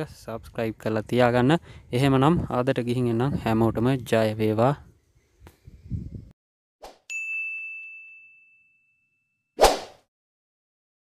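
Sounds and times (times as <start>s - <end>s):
high-pitched ding: 7.1s - 9.5s.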